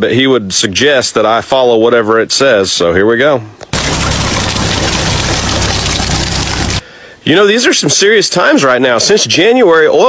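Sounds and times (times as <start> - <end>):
oil gushing onto gravel: 3.8 - 6.8.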